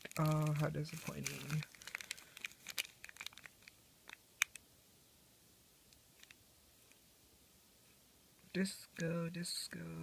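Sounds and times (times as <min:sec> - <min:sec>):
plastic bag crinkling: 0:00.0 - 0:04.6.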